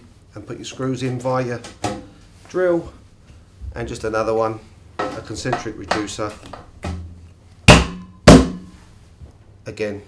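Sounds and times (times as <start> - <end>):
loud thuds on sheet metal: 6.8 - 8.7.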